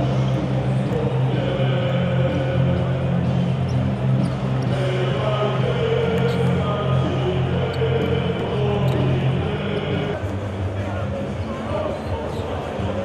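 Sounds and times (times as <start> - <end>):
crowd chanting: 0.0 - 10.3
loud music: 0.0 - 13.0.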